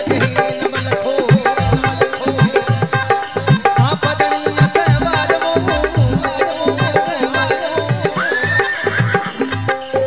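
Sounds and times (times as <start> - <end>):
devotional music with drum beat: 0.0 - 10.0.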